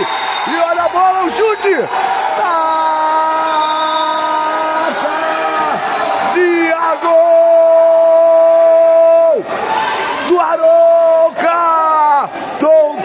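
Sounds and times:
man's long drawn-out shout: 1.7 - 9.5.

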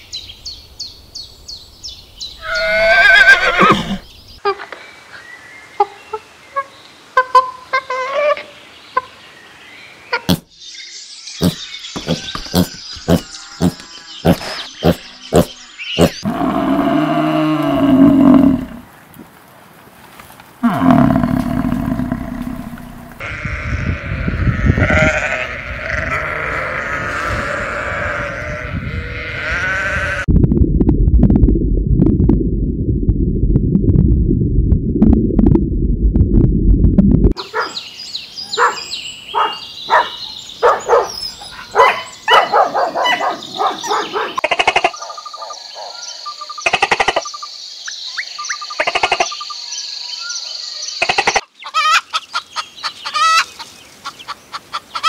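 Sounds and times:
horse whinnying: 2.4 - 4.0
livestock calls: 2.4 - 4.0, 20.6 - 30.3.

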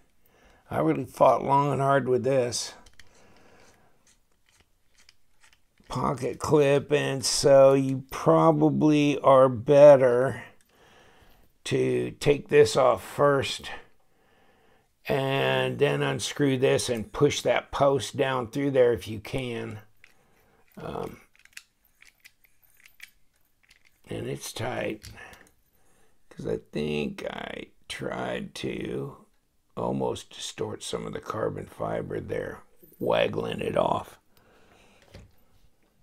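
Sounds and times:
screwdriver faint metallic clicks: 2.8 - 5.9, 21.3 - 24.0.

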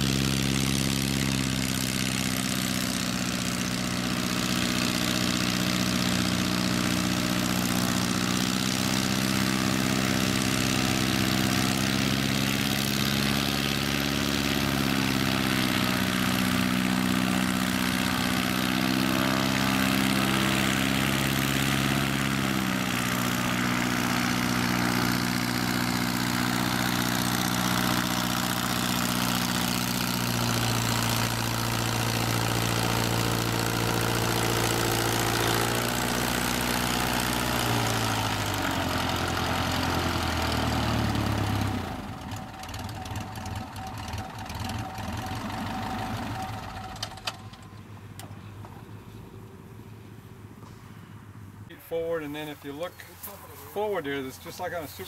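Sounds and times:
propeller plane engine idling: 0.0 - 51.7.

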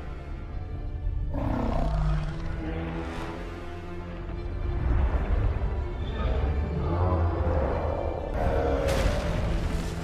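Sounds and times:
film score music: 0.0 - 10.0.

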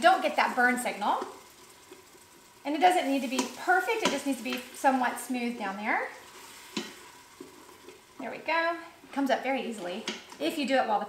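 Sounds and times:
liquid sizzling in a pot: 0.0 - 11.0.

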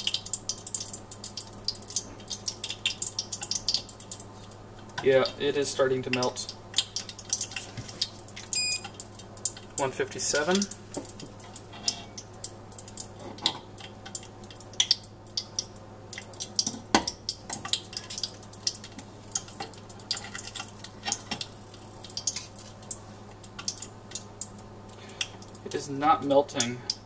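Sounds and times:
hot oil crackling and popping: 0.0 - 27.0.

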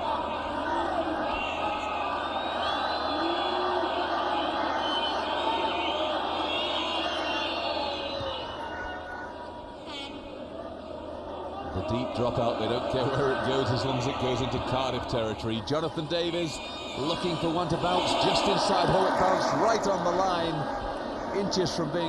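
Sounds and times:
crowd chanting: 0.0 - 22.0
stadium crowd din: 0.0 - 22.0.

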